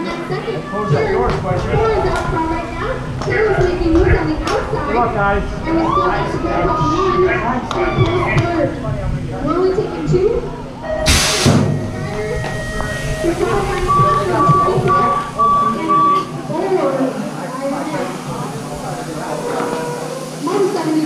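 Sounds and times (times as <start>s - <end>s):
crowd chatter: 0.0s - 21.0s
loud rush of noise: 0.0s - 21.0s
pa sound: 10.6s - 20.6s
short high beeps: 10.9s - 16.4s.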